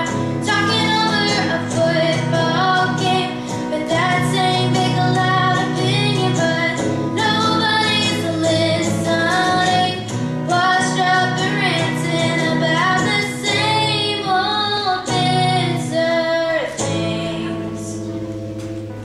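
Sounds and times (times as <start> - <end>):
girl singing: 0.0 - 18.2
electric guitar: 0.0 - 19.0.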